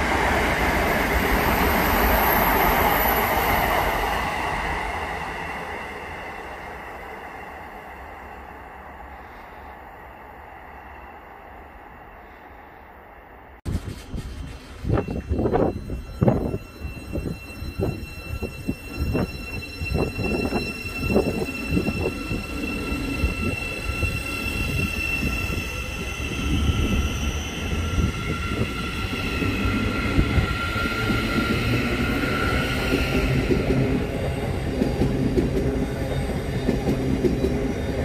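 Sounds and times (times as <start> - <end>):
train wheels clanking on track: 13.7 - 22.2.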